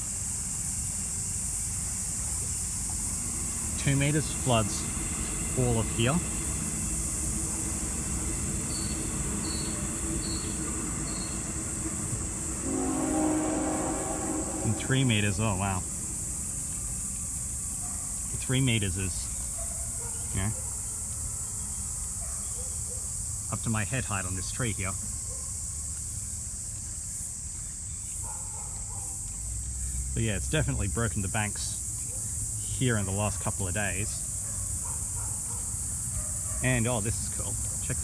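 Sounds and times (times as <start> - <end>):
insect chorus drone: 0.0 - 38.0
low even rumble: 3.5 - 17.0.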